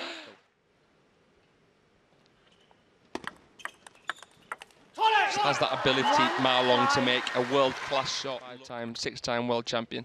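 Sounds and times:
table tennis ball clicks: 3.2s - 4.7s.

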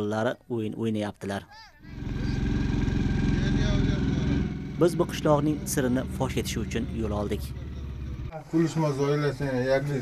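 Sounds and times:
engine running at low revs: 1.8s - 8.3s.

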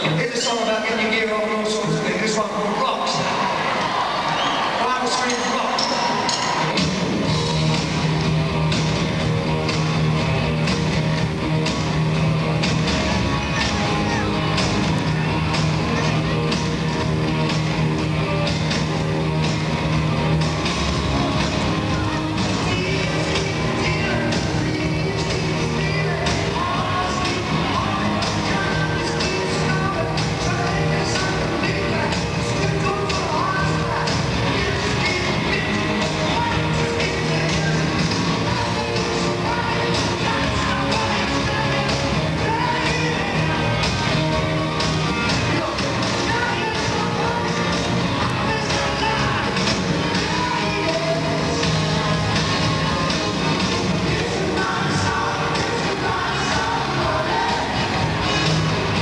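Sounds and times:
guitar: 0.0s - 59.0s
steady drum beat: 6.2s - 59.0s.

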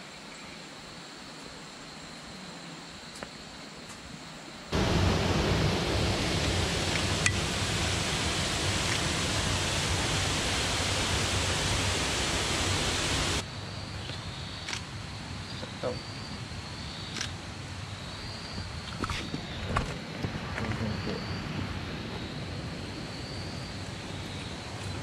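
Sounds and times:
creek water rushing: 4.7s - 13.4s.

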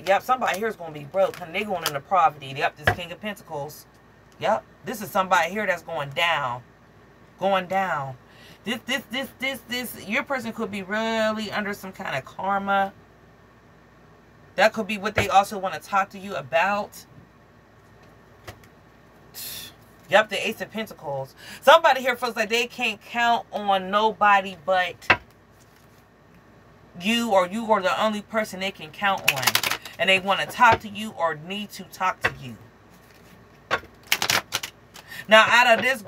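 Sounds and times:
faint steady hum: 0.0s - 36.0s
cards clicking and snapping: 29.3s - 30.0s, 33.1s - 35.1s.

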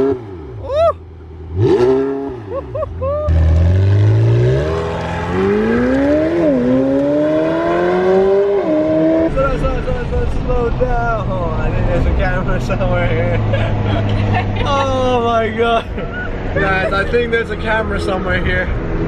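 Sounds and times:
sports car engine revving: 1.4s - 2.5s, 3.3s - 10.8s
car accelerating hard: 1.5s - 10.7s.

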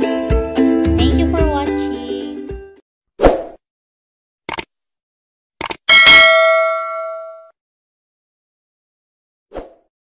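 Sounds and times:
notification bell ding: 5.9s - 7.5s.

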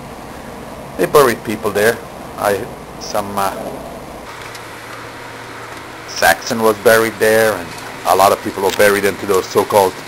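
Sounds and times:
even hiss: 0.0s - 10.0s
low hum: 0.0s - 10.0s.

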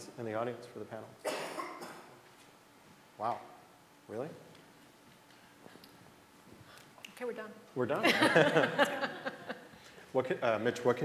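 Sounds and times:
person coughing: 1.2s - 2.1s.

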